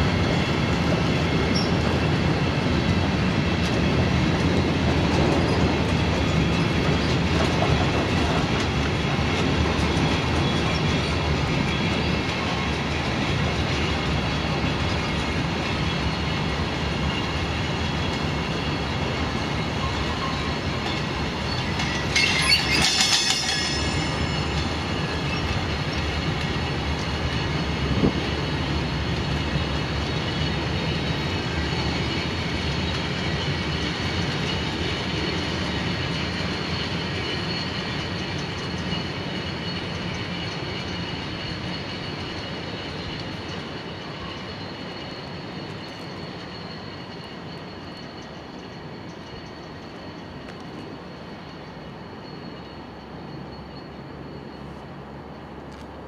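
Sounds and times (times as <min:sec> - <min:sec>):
train wheels rumbling and clattering: 0:00.0 - 0:56.0
wheel squeal: 0:01.2 - 0:02.6, 0:05.0 - 0:54.9.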